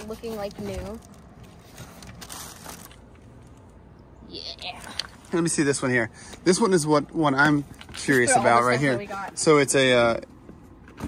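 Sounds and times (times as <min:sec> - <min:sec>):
plastic wrapping crinkling: 0:00.0 - 0:03.7.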